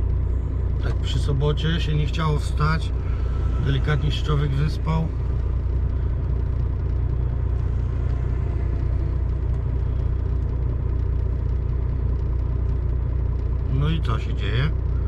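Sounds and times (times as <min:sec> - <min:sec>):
diesel truck engine idling: 0:00.0 - 0:15.0.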